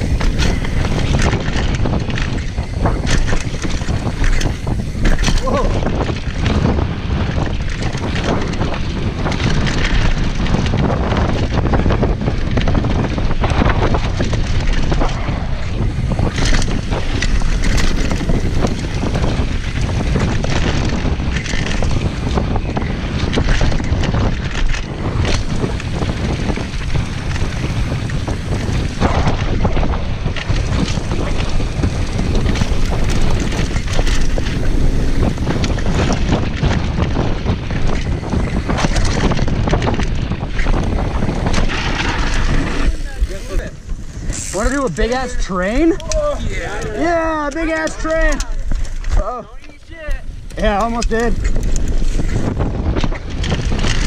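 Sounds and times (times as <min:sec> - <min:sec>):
bike clattering and knocking: 0:00.0 - 0:46.3, 0:47.2 - 0:54.0
tyres rumbling on gravel: 0:00.0 - 0:54.0
wind buffeting microphone: 0:00.0 - 0:54.0.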